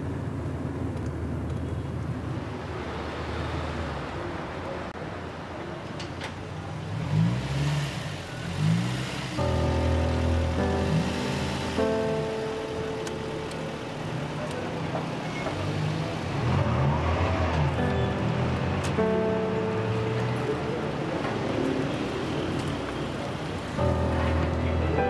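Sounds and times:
car engines passing and revving: 0.0s - 25.0s
sustained background music: 9.4s - 25.0s.

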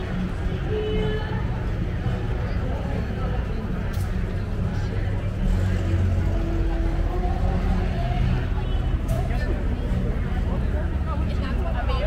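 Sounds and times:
people talking: 0.0s - 12.0s
vehicle engine running: 0.0s - 12.0s.

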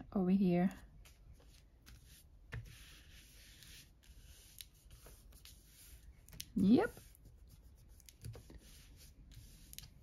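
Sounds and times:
hands rubbing paper: 1.0s - 10.0s.

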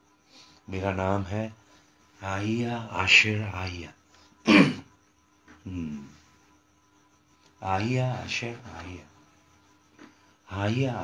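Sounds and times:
prayer speech: 0.6s - 4.6s, 7.6s - 9.2s, 10.4s - 11.0s
man clearing throat: 4.4s - 4.9s.

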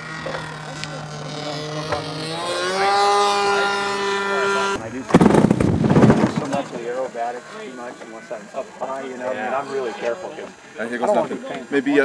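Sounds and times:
small piston engine running: 0.0s - 6.0s
loud rushing noise: 5.1s - 6.5s.

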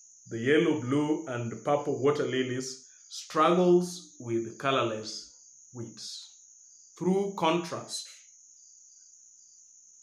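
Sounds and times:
high-pitched insect trill: 0.0s - 10.0s
soft insect chirp: 0.0s - 10.0s.

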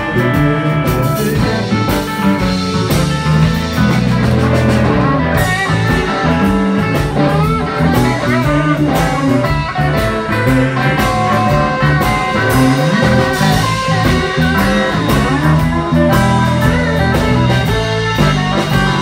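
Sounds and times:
electric guitar bent notes: 0.0s - 19.0s
live blues band: 0.0s - 19.0s.

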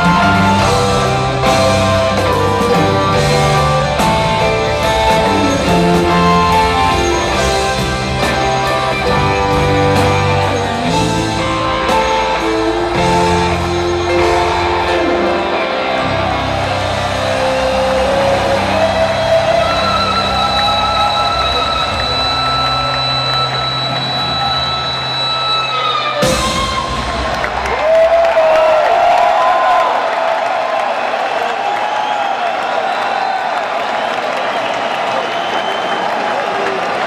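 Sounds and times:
live rock band playing: 0.0s - 27.8s
crowd cheering and whooping: 0.0s - 37.0s.

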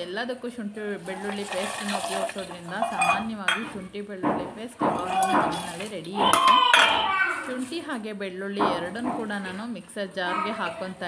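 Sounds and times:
steel jar clinking and rattling: 1.0s - 3.8s, 4.9s - 7.8s
loud high-pitched cry: 6.2s - 7.5s.

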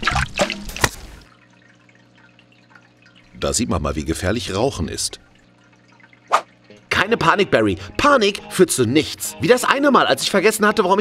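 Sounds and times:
cartoon water splashes: 0.0s - 1.3s, 6.1s - 6.6s
water dripping: 0.0s - 6.9s.

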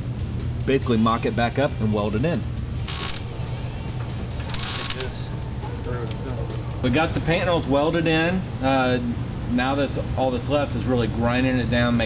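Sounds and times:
steady low hum: 2.4s - 12.0s
crackling welding arc: 2.9s - 3.6s, 4.4s - 5.4s.

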